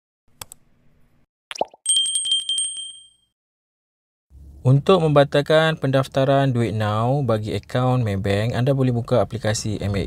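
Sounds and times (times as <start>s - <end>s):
bright bell-like ring: 1.9s - 3.4s.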